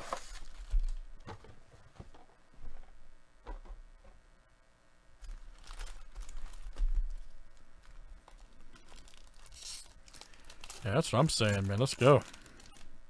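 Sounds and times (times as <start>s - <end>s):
foil pack tearing and crinkling: 0.0s - 1.0s, 5.2s - 12.9s.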